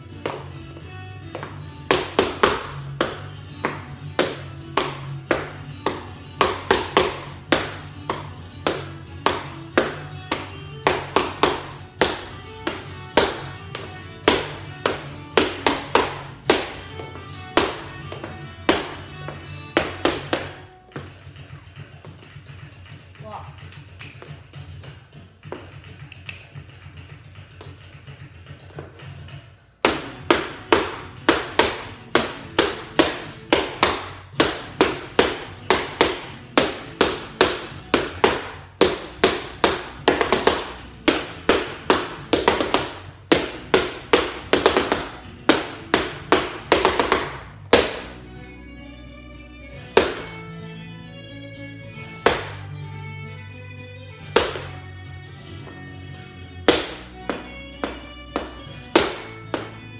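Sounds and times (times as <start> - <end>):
flamenco shoes tapping floor: 0.1 - 23.0, 23.8 - 48.1, 49.8 - 50.4, 52.2 - 52.6, 54.2 - 54.8, 56.6 - 59.9.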